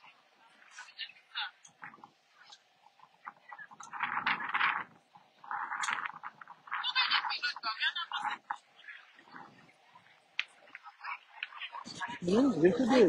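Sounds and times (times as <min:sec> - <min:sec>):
crowd talking: 0:06.7 - 0:13.0.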